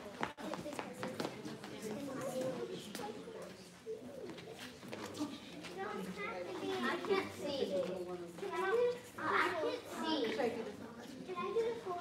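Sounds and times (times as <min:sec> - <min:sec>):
children and adults talking: 0:00.0 - 0:12.0
child's voice: 0:08.5 - 0:10.4, 0:11.3 - 0:12.0.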